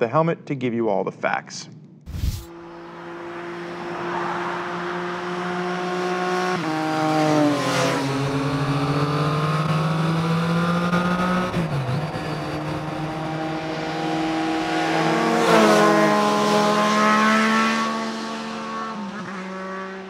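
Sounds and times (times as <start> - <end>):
motorcycles riding past: 2.5 - 11.2, 13.9 - 20.0.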